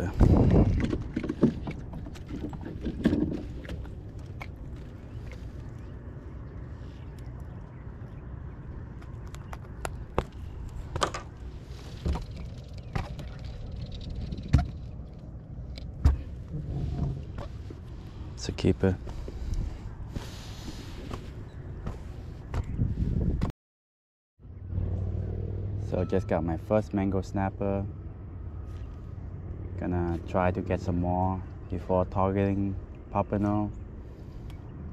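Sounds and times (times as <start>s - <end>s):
steady low rumble: 0.0s - 23.5s, 24.4s - 34.9s.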